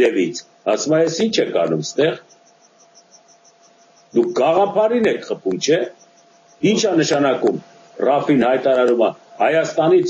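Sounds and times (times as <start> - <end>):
man speaking: 0.0 - 2.3, 4.2 - 6.0, 6.6 - 10.0
faint high pulsing: 0.0 - 10.0
faint hiss: 0.0 - 10.0
thin steady tone: 0.0 - 10.0.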